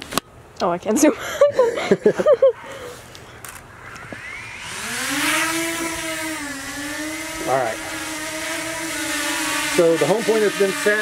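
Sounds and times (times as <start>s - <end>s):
drone motors whining: 2.3s - 11.0s.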